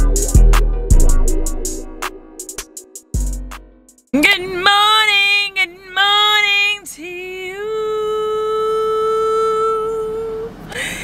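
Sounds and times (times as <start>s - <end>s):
woman singing: 4.2s - 10.6s.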